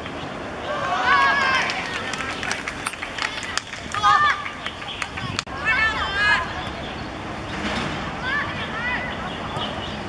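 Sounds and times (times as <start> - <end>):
cheer: 0.7 - 2.6.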